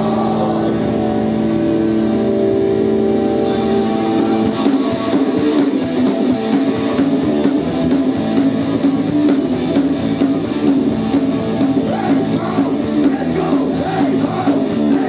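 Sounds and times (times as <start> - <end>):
electric guitar chords: 0.0 - 15.0
drums with cymbal strikes: 4.3 - 15.0.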